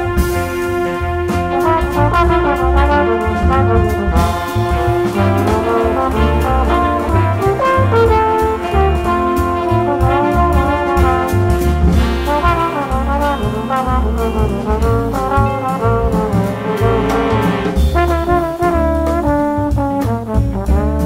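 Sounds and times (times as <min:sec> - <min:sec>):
drums with cymbal strokes: 0:00.0 - 0:21.0
trombone melody: 0:00.0 - 0:21.0
trumpets and saxophones: 0:00.0 - 0:21.0
walking bass: 0:00.0 - 0:21.0.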